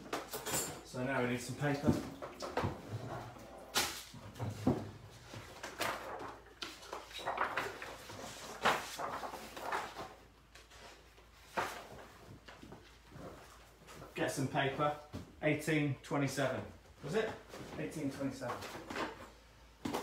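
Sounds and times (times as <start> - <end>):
paper handling noises: 3.7 - 14.9.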